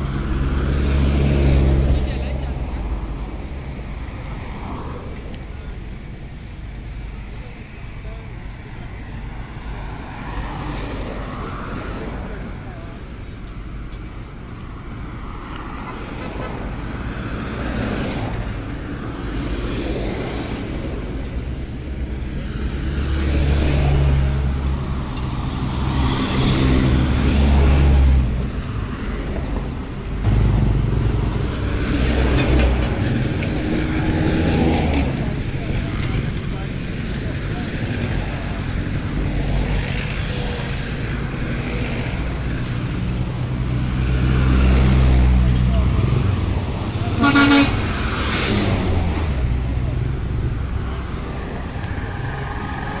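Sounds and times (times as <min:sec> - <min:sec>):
vehicle engines rumbling past: 0:00.0 - 0:53.0
car horn toot: 0:47.2 - 0:47.8.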